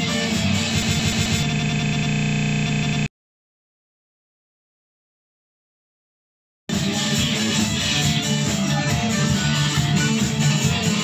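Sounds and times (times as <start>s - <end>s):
glitchy electronic buzz: 0.2s - 3.1s
band music: 6.7s - 11.0s.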